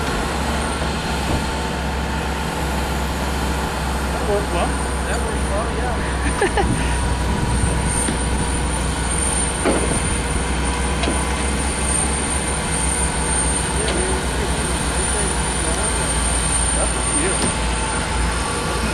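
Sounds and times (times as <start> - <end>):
truck engine rumbling: 0.0 - 18.9.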